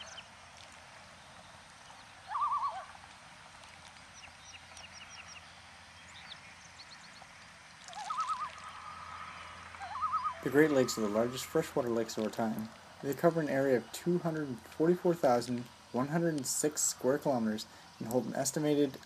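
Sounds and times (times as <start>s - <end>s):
bird quavering call: 2.2s - 3.0s, 7.8s - 11.8s
short high bird chirps: 7.9s - 8.7s.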